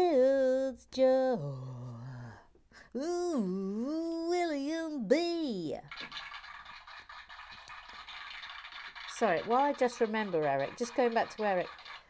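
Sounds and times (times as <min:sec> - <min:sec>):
faint scratching: 0:06.0 - 0:12.0.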